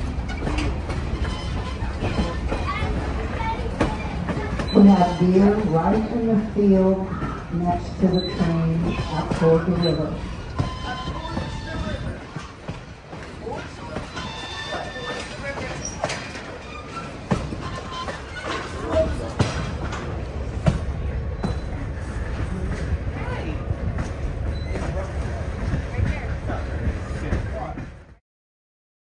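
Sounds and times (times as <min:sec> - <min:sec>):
wheel squeal: 0:00.0 - 0:02.6, 0:04.0 - 0:05.9, 0:08.0 - 0:12.6, 0:13.5 - 0:19.2, 0:21.4 - 0:21.9
passengers' voices: 0:00.0 - 0:28.2
rail joint clicks: 0:00.0 - 0:28.2
train wheels rumbling: 0:00.0 - 0:28.2.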